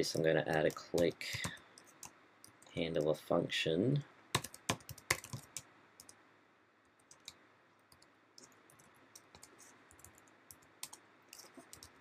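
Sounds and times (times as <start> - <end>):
computer keyboard key clicks: 4.4 - 6.1.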